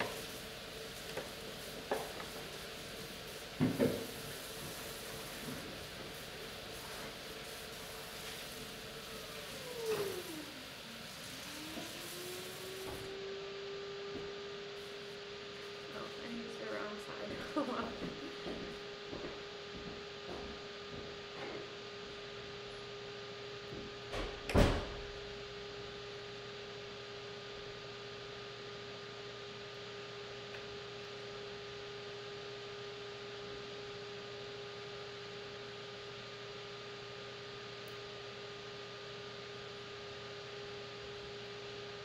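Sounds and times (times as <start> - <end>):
pottery wheel motor whining: 0.0 - 24.0.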